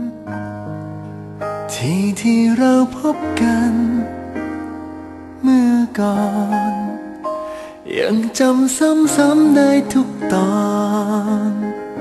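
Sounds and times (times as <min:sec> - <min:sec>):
pop song with singing: 0:00.0 - 0:00.4, 0:01.4 - 0:04.7, 0:05.3 - 0:12.0.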